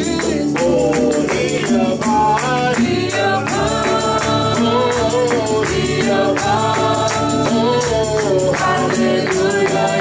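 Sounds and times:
tambourine shaken: 0.0 - 10.0
voices singing over a band: 0.0 - 10.0.

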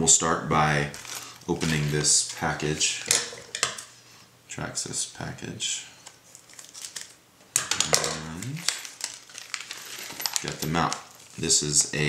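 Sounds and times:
plastic packaging crinkling: 0.9 - 4.0, 6.0 - 12.0.

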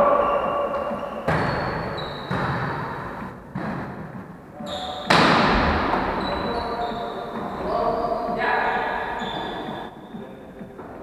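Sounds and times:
players' voices: 0.0 - 3.4, 4.5 - 11.0
volleyball hits echoing in gym: 0.0 - 11.0.

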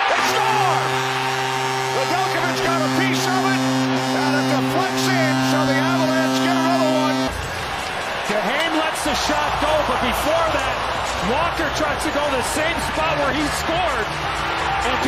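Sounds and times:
goal horn low tone: 0.0 - 7.4
crowd cheering: 0.0 - 15.0.

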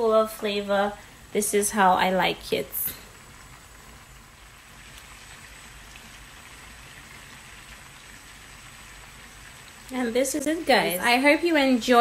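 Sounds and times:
butter sauce sizzling in a pan: 0.0 - 12.0.

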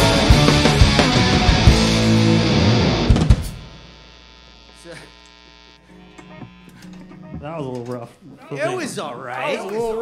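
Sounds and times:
amplifier hum and buzz: 0.0 - 7.7.

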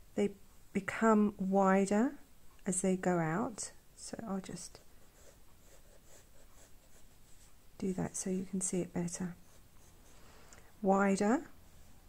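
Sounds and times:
pencil scratching on paper: 4.6 - 8.2, 9.2 - 10.2.

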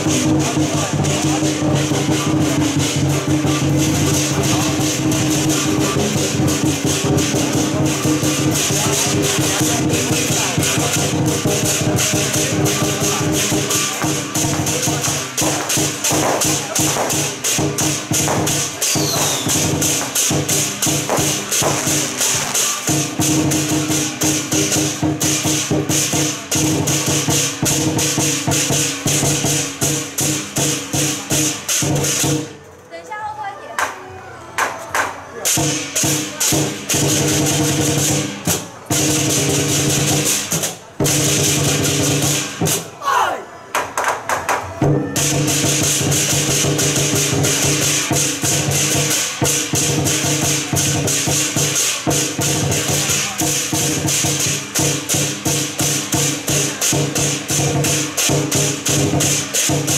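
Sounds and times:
large drum beaten rapidly: 0.0 - 32.5, 34.6 - 42.9, 43.8 - 59.9
hand cymbals clashing: 0.0 - 32.7, 35.4 - 42.9, 44.8 - 59.9.

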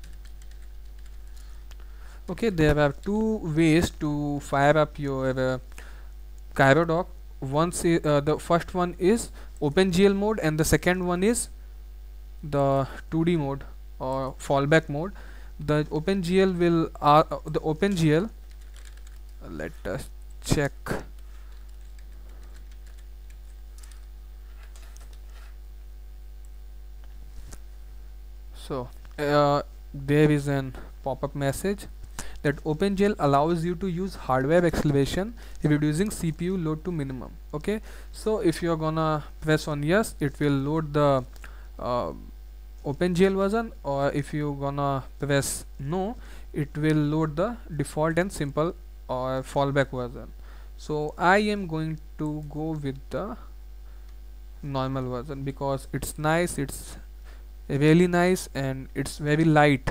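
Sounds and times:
low electrical hum: 0.0 - 59.9
faint keyboard keystrokes: 18.5 - 19.3, 21.1 - 25.5.

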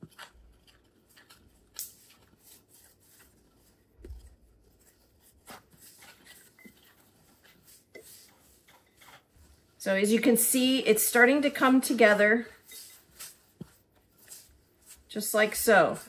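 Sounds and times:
whisk scraping dough in metal bowl: 0.0 - 16.0.

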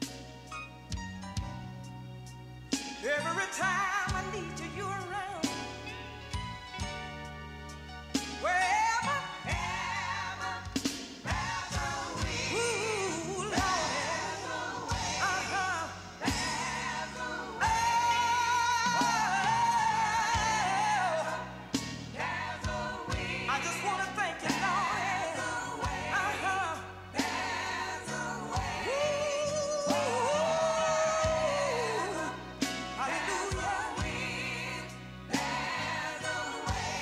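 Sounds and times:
bass and band: 0.0 - 37.0
woman singing gospel with vibrato: 3.0 - 5.7, 8.4 - 37.0.

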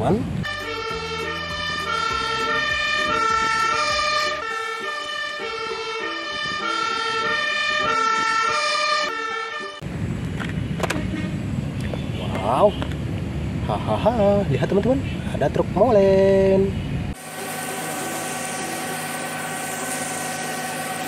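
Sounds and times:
fire engine siren two-tone: 0.4 - 9.8.

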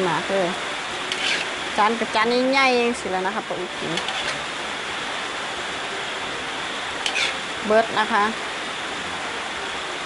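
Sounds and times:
food sizzling in a wok: 0.0 - 10.0.

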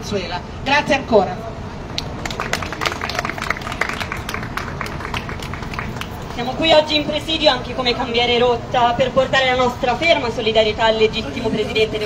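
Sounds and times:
crowd applauding: 2.0 - 6.4.

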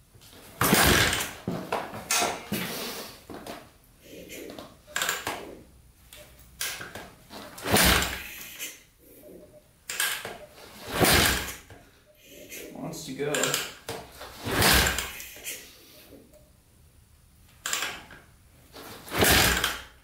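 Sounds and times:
engine turning over without catching: 0.6 - 1.4, 7.6 - 8.4, 10.9 - 11.6, 14.4 - 15.2, 19.1 - 19.9.

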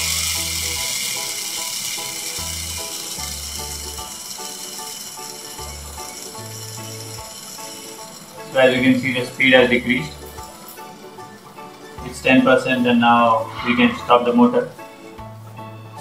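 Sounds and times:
small motor whirring: 0.0 - 9.4
background music: 0.0 - 16.0.

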